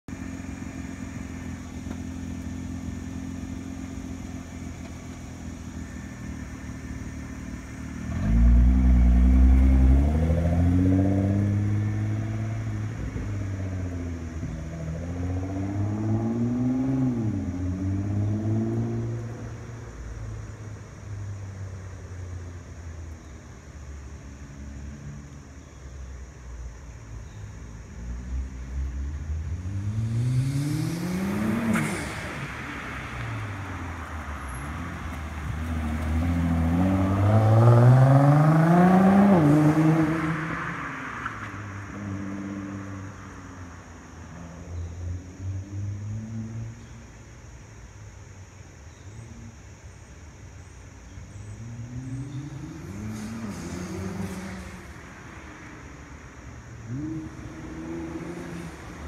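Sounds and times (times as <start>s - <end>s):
car engine idling: 0.0s - 8.2s
car accelerating hard: 7.4s - 19.5s, 29.5s - 43.3s, 51.4s - 55.8s, 56.6s - 59.0s.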